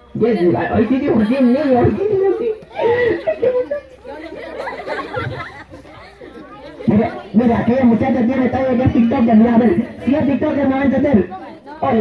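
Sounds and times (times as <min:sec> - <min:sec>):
audience chatter: 0:00.0 - 0:12.0.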